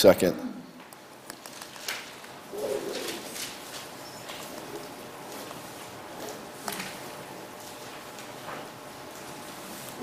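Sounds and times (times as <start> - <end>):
thin pages turning: 1.3 - 5.9.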